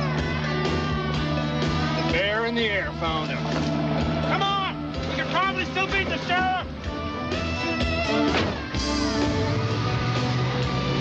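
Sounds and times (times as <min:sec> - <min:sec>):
rock guitar music: 0:00.0 - 0:11.0
men shouting and whooping: 0:03.8 - 0:06.8.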